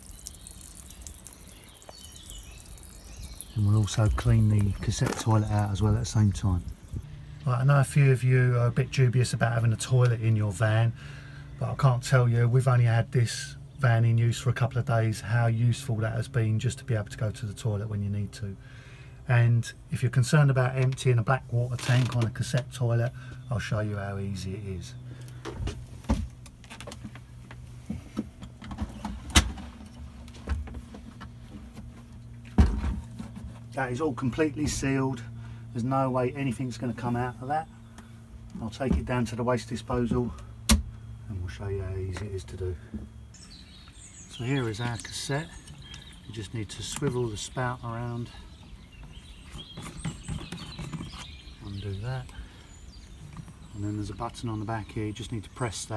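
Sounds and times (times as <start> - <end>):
birds chirping: 0.0 - 55.9.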